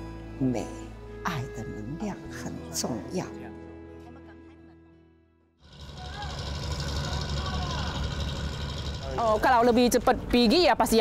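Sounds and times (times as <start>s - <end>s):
background music: 0.0s - 8.2s
boat engine rumbling: 5.6s - 11.0s.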